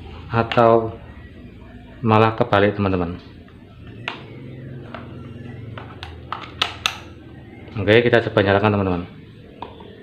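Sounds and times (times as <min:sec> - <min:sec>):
fan motor humming: 0:00.0 - 0:10.0.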